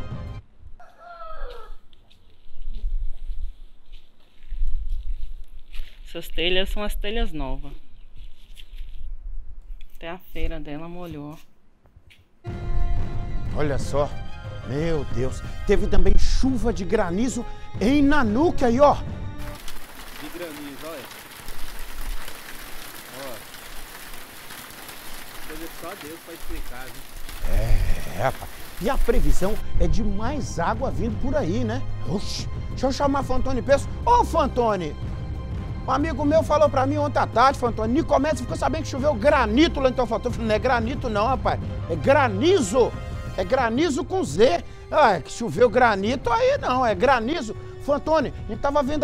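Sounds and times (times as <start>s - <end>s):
hail and heavy rain falling: 19.4s - 29.6s.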